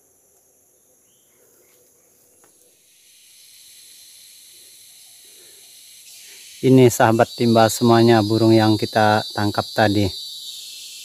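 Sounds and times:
high-pitched insect hiss: 0.0s - 11.0s.

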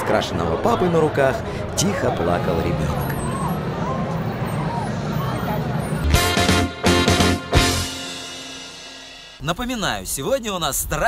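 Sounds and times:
hubbub of voices: 0.0s - 6.2s.

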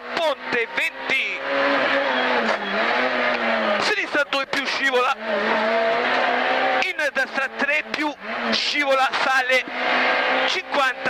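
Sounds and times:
rally car engine at speed: 0.0s - 11.0s.

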